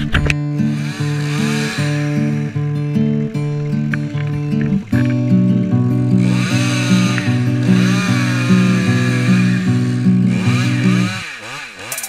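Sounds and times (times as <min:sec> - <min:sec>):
background music with bass: 0:00.0 - 0:11.3
chainsaw cutting wood: 0:00.0 - 0:12.0.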